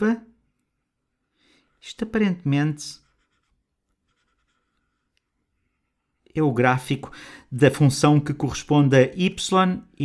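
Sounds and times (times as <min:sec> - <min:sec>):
stylus scratching drawing tablet: 0:02.8 - 0:05.1.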